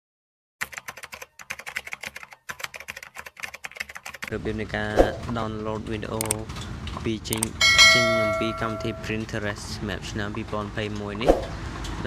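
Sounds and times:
fast keyboard typing: 0.6 - 4.3, 6.1 - 7.6.

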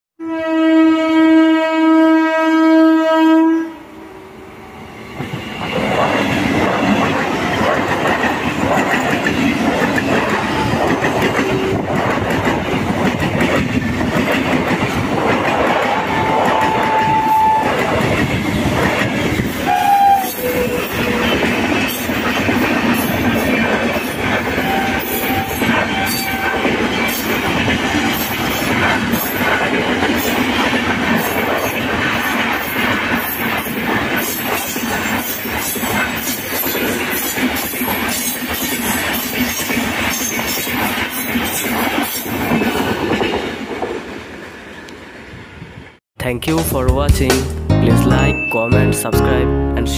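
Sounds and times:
train horn: 0.2 - 4.8, 15.9 - 17.9, 19.6 - 21.3, 24.5 - 26.7
trains passing at speed: 3.6 - 46.0
wheels clacking over rail joints: 5.2 - 19.6.

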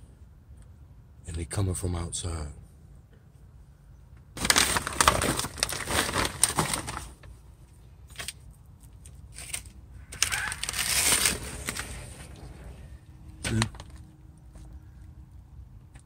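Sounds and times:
paper and plastic rustling: 4.4 - 7.4, 8.1 - 12.8.

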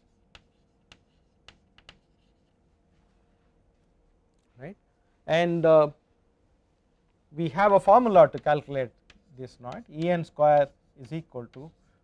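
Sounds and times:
chalk tapping on blackboard: 0.0 - 2.6, 7.6 - 12.0.

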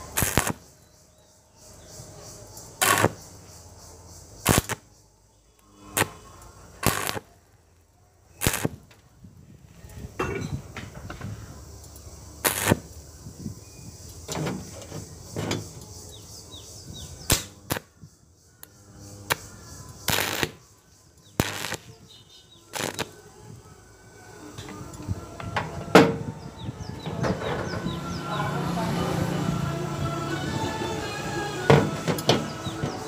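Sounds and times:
welding arc bursts: 0.0 - 0.6, 2.8 - 3.2, 4.4 - 4.9, 5.8 - 7.3, 8.4 - 8.8, 12.4 - 13.0, 17.2 - 17.9, 19.1 - 20.6, 21.3 - 22.0, 22.7 - 23.2.

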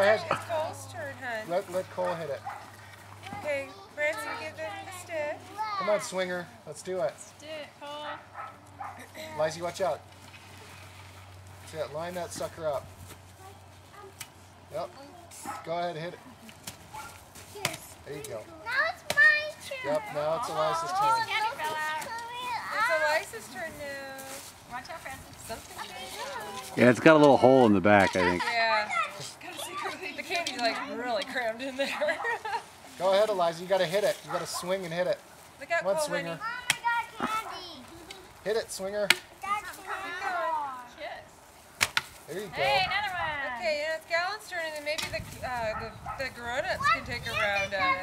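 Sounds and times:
stick striking a pinata: 17.6 - 18.4, 19.0 - 19.5, 36.6 - 37.0, 39.0 - 39.4, 41.8 - 42.2
stick whacking pinata: 19.0 - 19.4, 36.6 - 37.0, 41.8 - 42.2.

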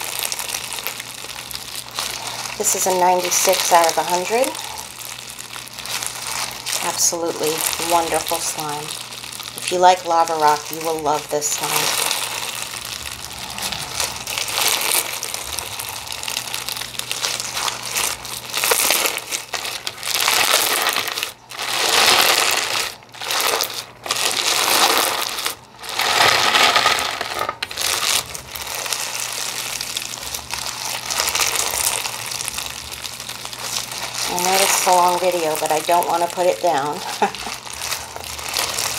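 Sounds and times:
crunchy slime being squeezed: 0.0 - 38.9.

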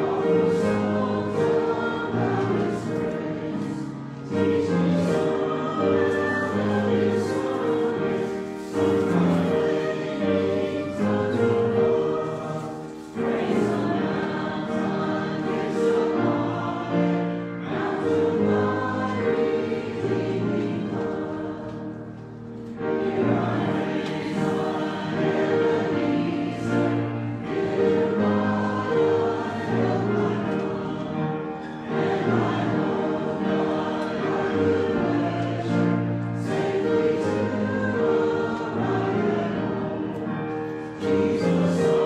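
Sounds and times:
congregation singing a hymn: 0.0 - 42.0.

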